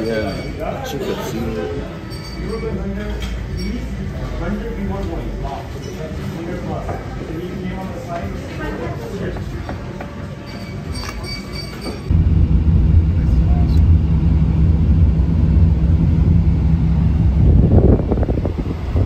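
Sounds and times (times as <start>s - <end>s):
restaurant room noise: 0.0s - 19.0s
engine and road noise in cab: 12.1s - 19.0s.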